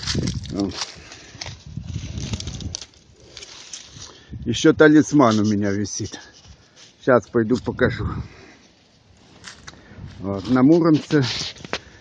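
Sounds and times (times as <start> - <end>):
wind buffeting microphone: 0.0 - 4.9, 7.6 - 8.4, 9.5 - 10.7
leaves rustling and crackling: 0.0 - 12.0.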